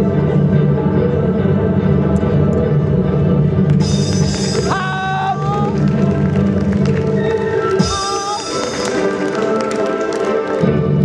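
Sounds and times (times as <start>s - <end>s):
loud stage music: 0.0s - 11.0s.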